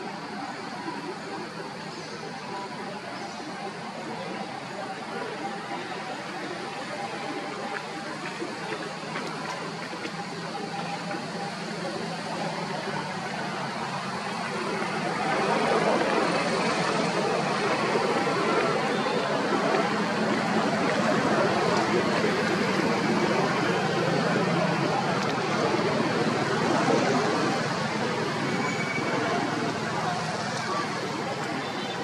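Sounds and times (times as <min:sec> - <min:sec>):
outdoor background noise: 0:00.0 - 0:32.0.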